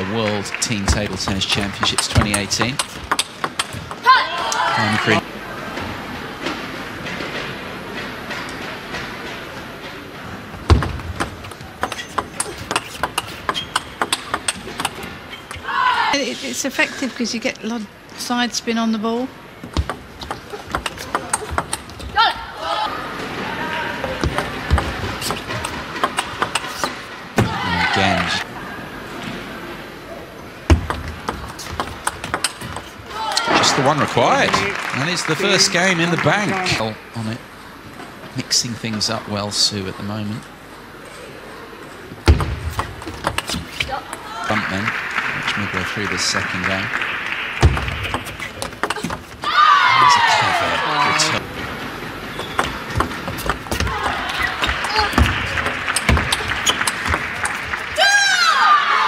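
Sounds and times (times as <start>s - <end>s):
arena crowd noise: 0.0s - 59.0s
table tennis ball clicking: 1.2s - 4.0s, 11.5s - 15.0s, 19.7s - 22.0s
person shouting: 4.0s - 5.2s.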